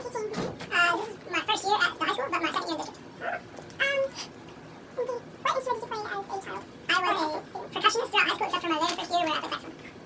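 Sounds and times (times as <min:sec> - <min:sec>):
person making high-pitched vocal sounds: 0:03.2 - 0:04.3.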